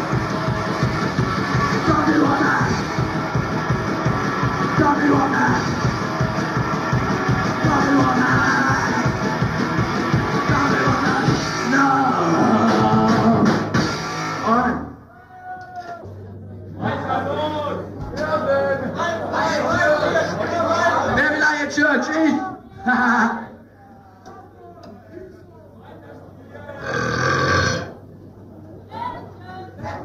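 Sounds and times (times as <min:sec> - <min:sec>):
punk rock band playing: 0:00.0 - 0:11.7.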